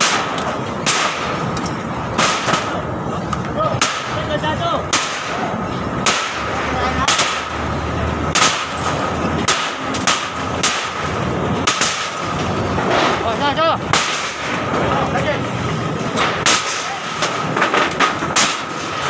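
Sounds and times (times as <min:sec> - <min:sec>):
street traffic: 0:00.0 - 0:19.0.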